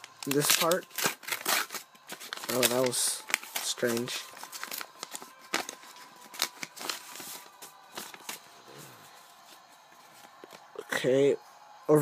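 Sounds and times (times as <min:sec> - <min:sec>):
paper rustling and crackling: 0:00.0 - 0:08.5, 0:09.1 - 0:10.8.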